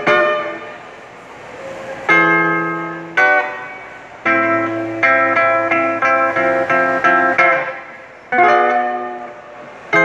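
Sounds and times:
acoustic guitar chords strummed: 0:02.1 - 0:10.0.

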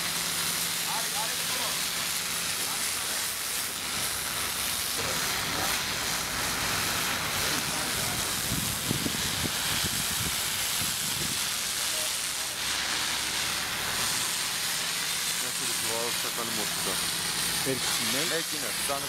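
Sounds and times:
water jetting from hose: 0:00.0 - 0:19.0.

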